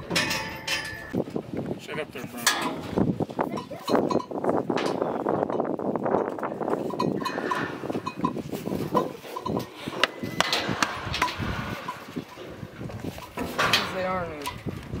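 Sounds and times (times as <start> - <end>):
clinks and knocks on metal chute: 0.0 - 1.2, 2.4 - 2.9, 3.6 - 14.7.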